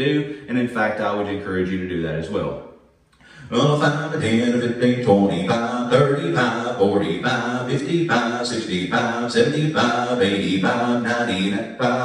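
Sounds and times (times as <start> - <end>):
man's auctioneer chant: 0.0 - 2.7, 3.4 - 10.0.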